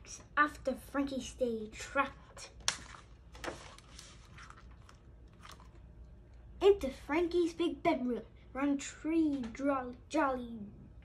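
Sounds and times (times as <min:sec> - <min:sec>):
book page turning: 0:02.6 - 0:05.9.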